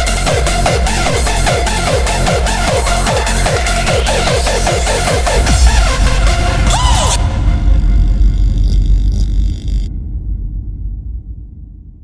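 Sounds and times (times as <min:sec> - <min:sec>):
deep rumbling techno bass: 0:00.0 - 0:12.0.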